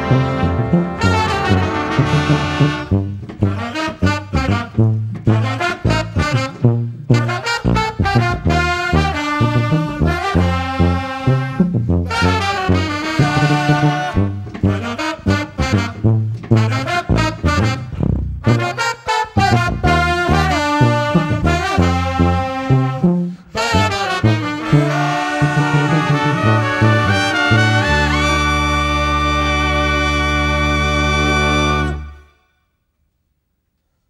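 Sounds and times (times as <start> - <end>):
brass band playing funk: 0.0 - 32.4
people singing and shouting: 24.4 - 28.4.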